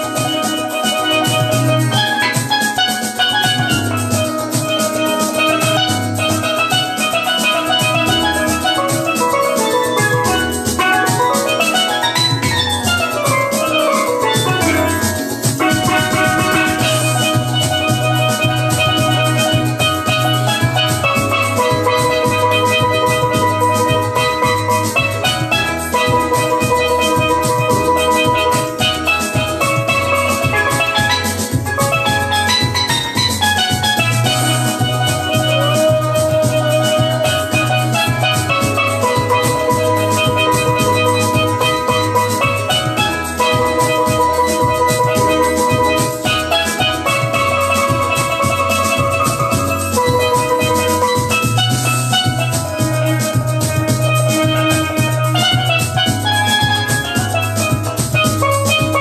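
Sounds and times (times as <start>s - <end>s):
steady beat: 0.0s - 59.0s
steel pan melody: 0.0s - 59.0s.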